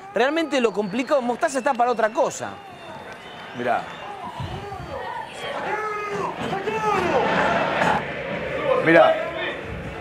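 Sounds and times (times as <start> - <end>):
stadium crowd noise: 0.0 - 10.0
man shouting: 5.6 - 7.2.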